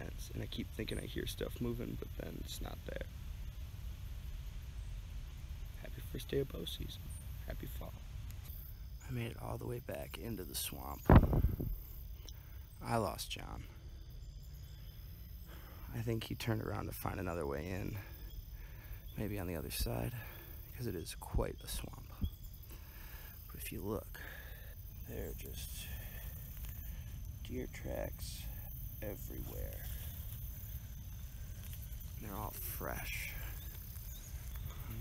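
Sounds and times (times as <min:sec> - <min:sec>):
insect trilling: 0:00.0 - 0:35.0
wind noise: 0:10.8 - 0:12.0
faint rustling: 0:10.8 - 0:12.2, 0:22.1 - 0:35.0
camera handling rumble: 0:11.1 - 0:11.8
steps through wet grass: 0:25.2 - 0:35.0.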